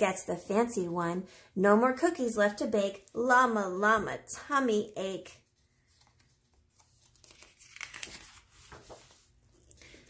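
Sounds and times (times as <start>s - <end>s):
book page turning: 5.5s - 10.0s.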